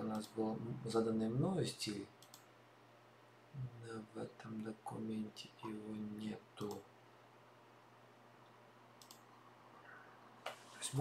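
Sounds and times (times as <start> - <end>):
low room hum: 0.0 - 11.0
computer mouse click: 2.2 - 2.5, 9.0 - 9.3.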